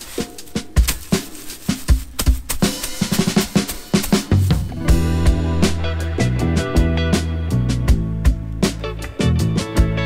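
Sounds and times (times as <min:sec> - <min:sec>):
drum kit beat: 0:00.0 - 0:10.0.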